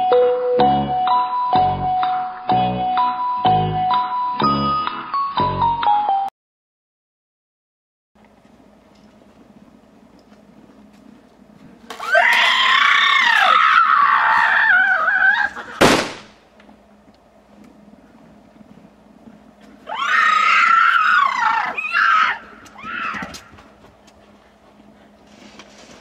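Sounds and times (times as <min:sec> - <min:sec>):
sharp bang: 0:15.8 - 0:16.4.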